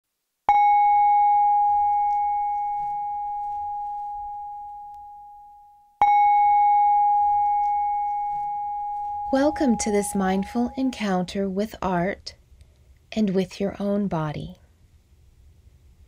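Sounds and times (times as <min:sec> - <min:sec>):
singing bowl struck and ringing: 0:00.5 - 0:11.3.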